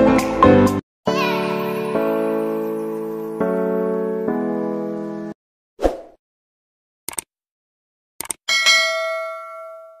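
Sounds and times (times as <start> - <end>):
bright bell ding: 8.5 - 10.0.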